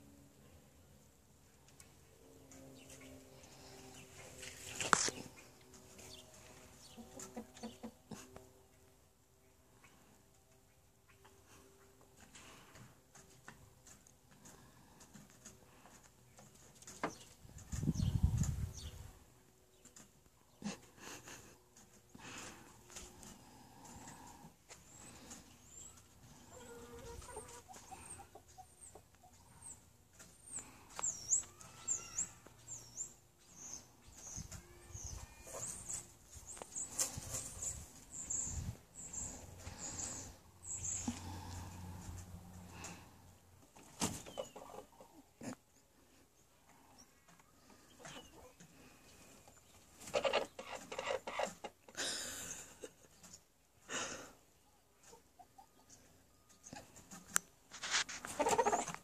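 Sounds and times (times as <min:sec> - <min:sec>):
hens clucking: 0:02.9 - 0:08.5, 0:19.7 - 0:32.7, 0:33.6 - 0:53.6, 0:54.9 - 0:59.0.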